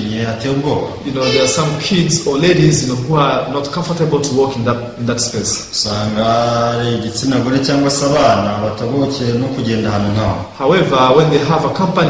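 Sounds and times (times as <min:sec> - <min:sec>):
man speaking: 0:00.0 - 0:12.0
man saying drawn-out uhh: 0:01.2 - 0:01.9.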